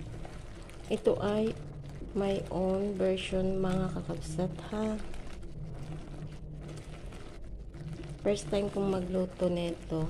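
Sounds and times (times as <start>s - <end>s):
low steady hum: 0.0s - 10.0s
thick liquid bubbling: 0.0s - 10.0s.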